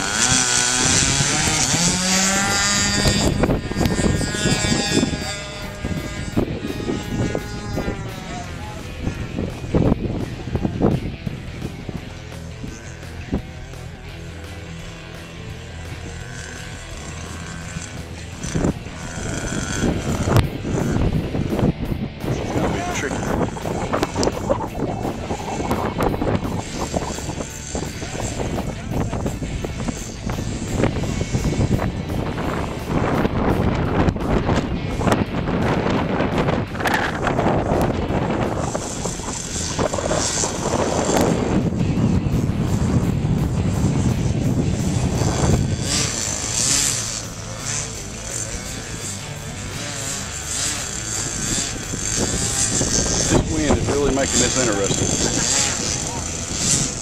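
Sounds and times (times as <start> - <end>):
model airplane engine whine: 0.0 - 57.0
wind buffeting microphone: 0.0 - 57.0.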